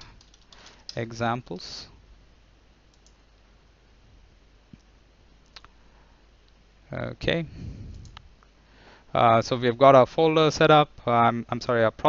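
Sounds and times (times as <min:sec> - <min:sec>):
computer mouse clicks: 0:00.0 - 0:01.0, 0:02.9 - 0:03.2.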